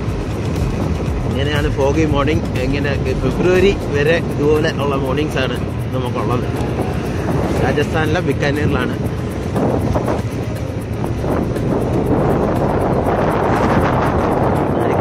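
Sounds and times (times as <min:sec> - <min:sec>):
vehicle running noise: 0:00.0 - 0:15.0
wind buffeting microphone: 0:00.0 - 0:15.0.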